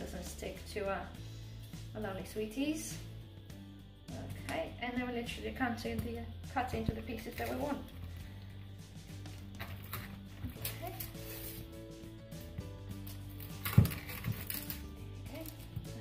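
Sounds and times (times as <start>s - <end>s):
background music with held notes: 0.0s - 16.0s.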